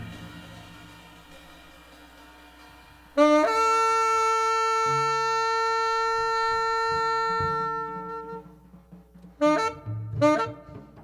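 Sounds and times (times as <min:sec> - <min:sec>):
low double bass notes: 0:00.0 - 0:00.6, 0:03.4 - 0:08.5
saxophone long bright note: 0:03.2 - 0:08.5.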